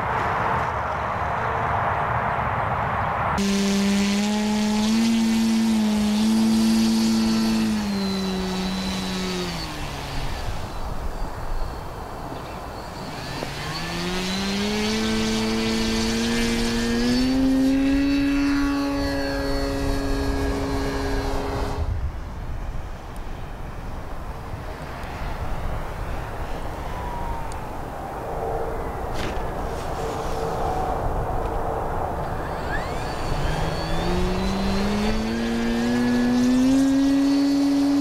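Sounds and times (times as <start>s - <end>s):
model plane electric motor whining: 3.4s - 21.9s, 32.2s - 38.0s.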